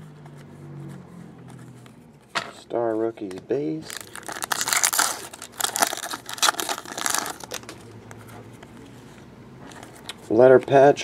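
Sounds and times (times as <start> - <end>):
foil wrapper tearing and crinkling: 3.8 - 7.8.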